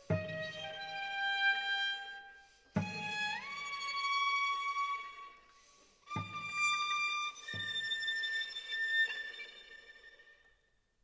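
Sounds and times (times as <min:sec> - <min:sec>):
string quartet music: 0:00.0 - 0:10.2.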